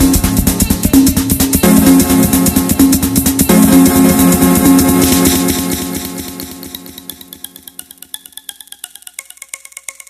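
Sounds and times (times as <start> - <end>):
bright plucked synth notes: 0.0 - 10.0
tech house music: 0.0 - 10.0.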